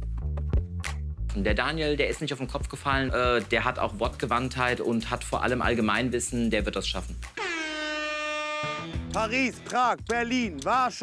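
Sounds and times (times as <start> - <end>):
air horn blast: 7.4 - 9.0.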